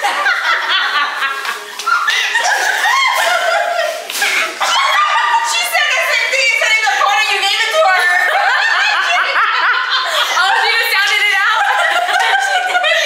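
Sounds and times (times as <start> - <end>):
women laughing and chattering: 0.0 - 13.0.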